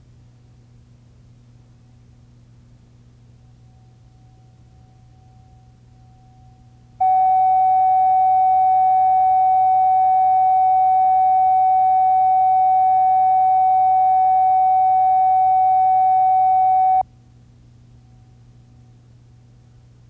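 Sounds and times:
faint electrical hum: 0:00.0 - 0:20.0
electronic test tone: 0:07.0 - 0:17.0.

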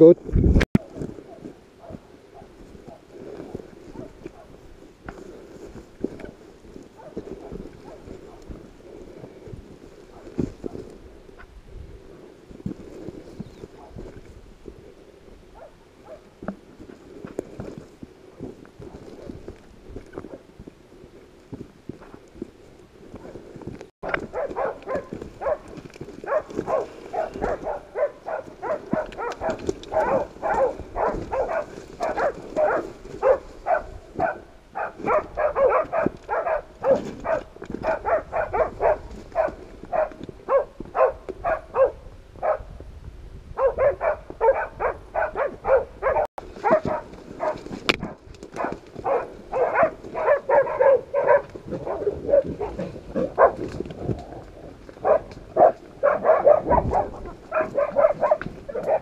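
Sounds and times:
dogs barking rapidly: 0:24.0 - 0:42.7, 0:43.6 - 0:53.7, 0:55.0 - 0:59.0.

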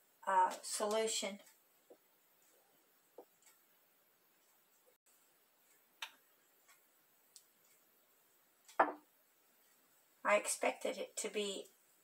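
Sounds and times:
glass clicking: 0:08.7 - 0:09.0
glass vessel knocking on counter: 0:08.8 - 0:09.0.

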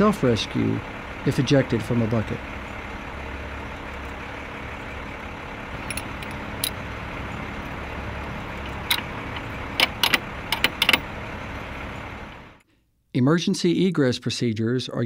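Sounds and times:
truck engine running: 0:00.0 - 0:12.6
metal clicks and clinks: 0:05.8 - 0:06.9, 0:08.5 - 0:11.1.

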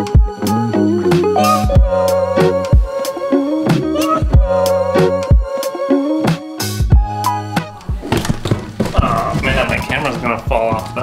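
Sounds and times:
footsteps down wooden stairs: 0:07.6 - 0:11.0.

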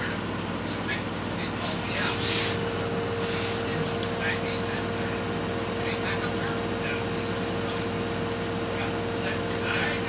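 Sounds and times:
washing machine motor whine: 0:00.0 - 0:10.0.

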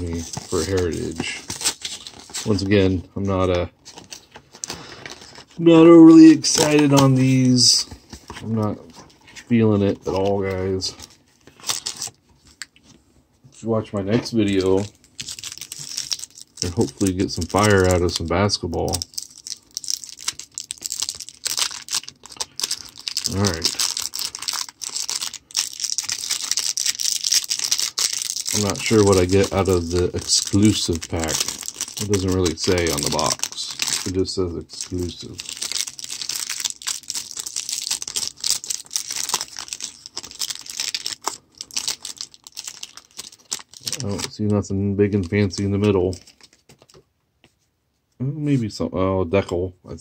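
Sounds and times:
plastic wrapper crinkling and tearing: 0:00.0 - 0:02.9, 0:03.8 - 0:12.7, 0:14.3 - 0:47.0.

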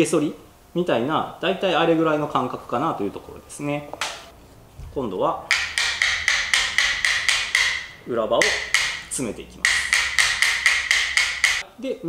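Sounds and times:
small hammer tapping steel: 0:05.5 - 0:11.6.

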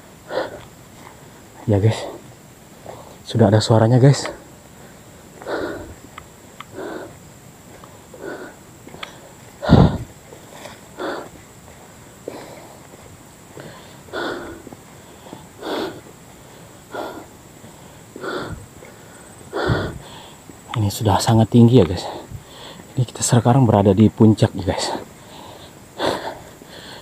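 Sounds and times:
person breathing hard: 0:00.2 - 0:02.2, 0:04.3 - 0:20.6, 0:22.0 - 0:22.9, 0:24.9 - 0:27.0.

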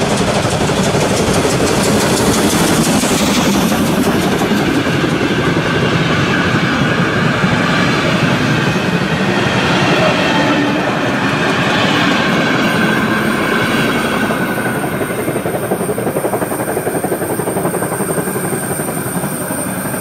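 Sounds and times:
train wheels rolling over rails: 0:00.0 - 0:20.0.

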